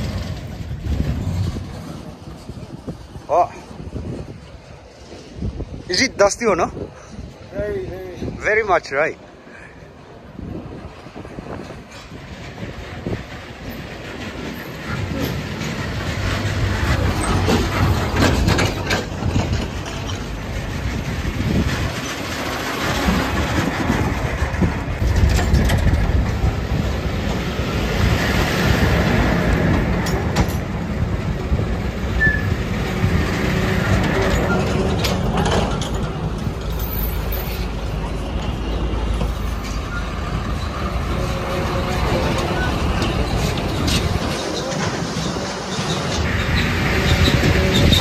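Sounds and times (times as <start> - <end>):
vehicles rumbling on dirt road: 0.0 - 48.0.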